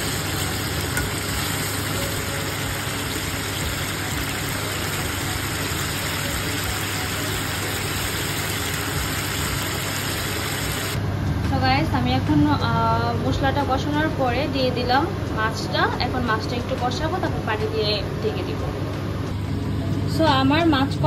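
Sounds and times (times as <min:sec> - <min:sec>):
sauce sizzling in oil: 0:00.0 - 0:11.0.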